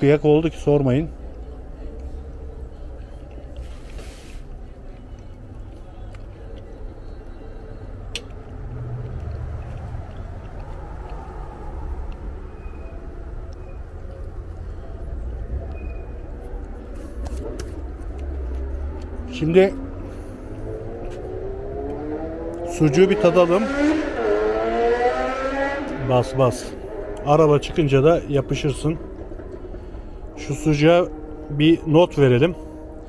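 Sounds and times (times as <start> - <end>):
low outdoor rumble: 0.0 - 23.4, 25.7 - 33.0.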